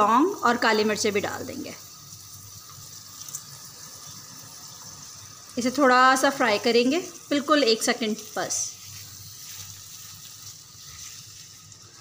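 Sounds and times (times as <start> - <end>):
onions sizzling in oil: 0.0 - 12.0.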